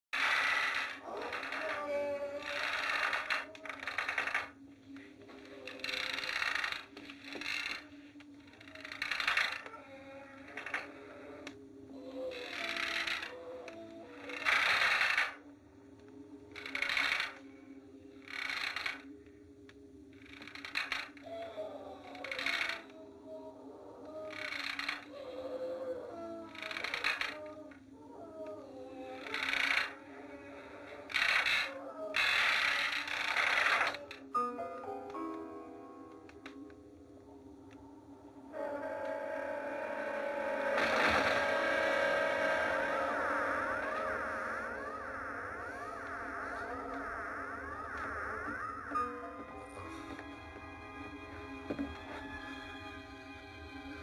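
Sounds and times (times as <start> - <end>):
eerie sustained tones: 0.2 - 54.0.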